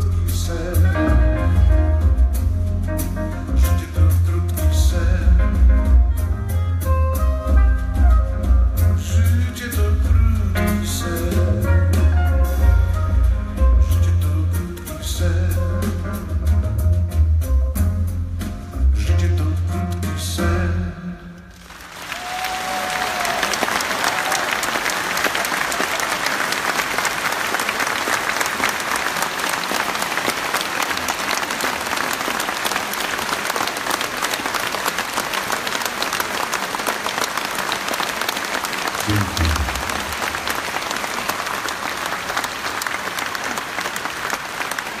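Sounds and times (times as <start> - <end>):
audience applauding: 21.5 - 45.0.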